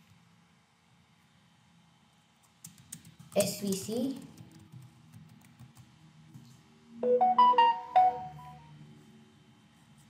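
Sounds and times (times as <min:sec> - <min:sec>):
electronic melody: 0:07.0 - 0:08.7.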